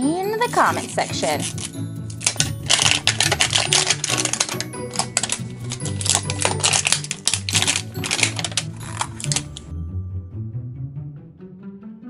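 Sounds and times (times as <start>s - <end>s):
wrapper crinkling as peeled: 0.8s - 9.7s.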